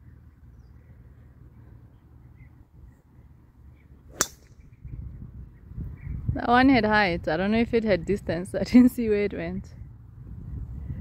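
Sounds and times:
golf driver striking ball: 4.1s - 4.6s.

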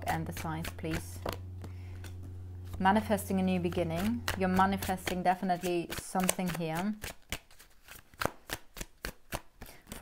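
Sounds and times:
cards being shuffled: 0.2s - 10.0s.

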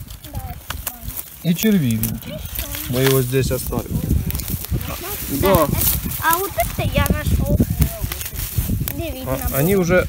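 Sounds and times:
dry pine needles rustling: 0.0s - 10.0s
person speaking: 0.2s - 9.7s.

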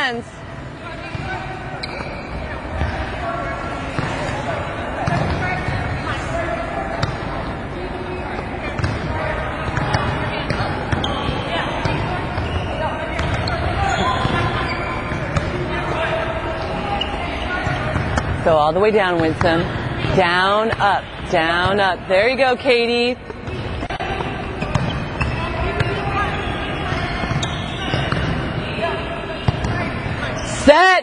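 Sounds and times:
players' voices: 0.0s - 31.0s.

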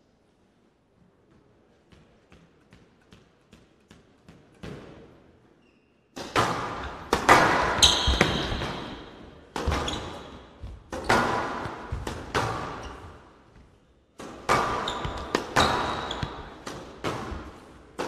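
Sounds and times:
shoes squeaking on court: 5.5s - 6.2s, 7.8s - 16.6s
squash ball hits: 6.2s - 13.3s, 14.2s - 18.0s.

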